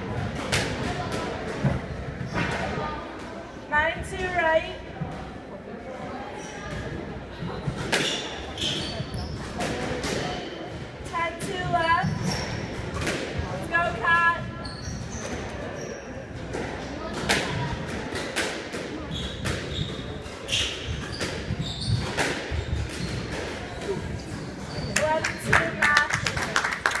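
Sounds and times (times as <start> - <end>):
shoes squeaking on hardwood: 19.1 - 25.2.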